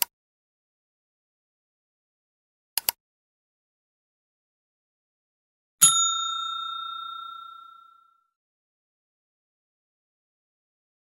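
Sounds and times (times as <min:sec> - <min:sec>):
bell ding: 0:05.8 - 0:08.3.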